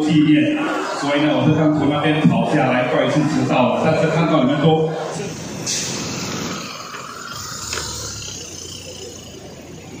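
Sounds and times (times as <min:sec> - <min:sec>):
motorcycle engine passing: 0:06.0 - 0:10.0.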